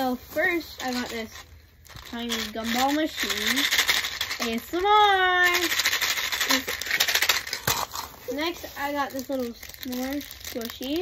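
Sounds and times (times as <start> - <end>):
gumballs rattling in toy machine: 0.6 - 8.1, 8.8 - 11.0.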